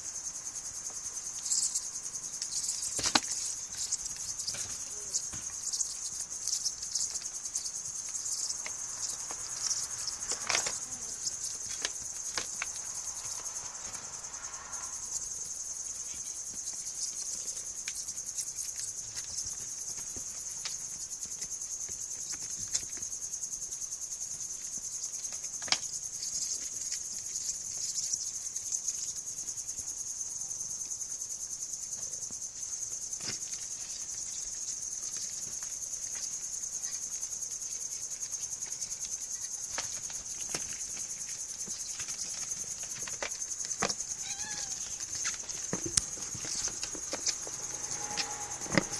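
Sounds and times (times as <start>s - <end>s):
crickets chirping: 0.0s - 48.9s.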